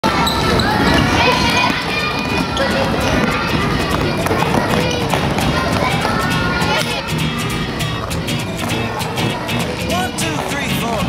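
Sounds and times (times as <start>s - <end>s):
voices calling out: 0.0s - 11.0s.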